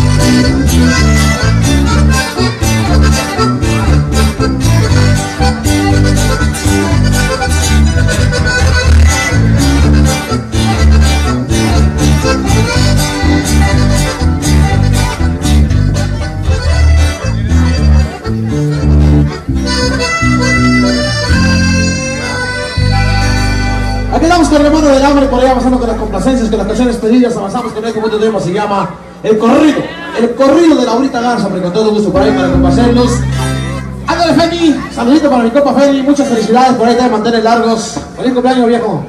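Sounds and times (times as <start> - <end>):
heavy bass line: 0.0 - 28.4, 32.0 - 37.0
accordion: 0.0 - 29.2, 30.5 - 38.4
guitar: 0.0 - 39.0
steady beat: 32.1 - 35.8.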